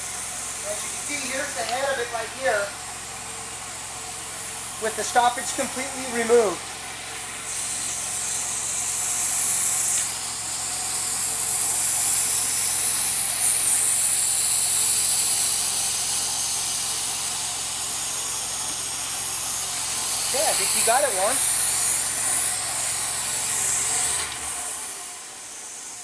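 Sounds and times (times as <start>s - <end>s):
water jet hissing in pipe: 0.0s - 26.0s.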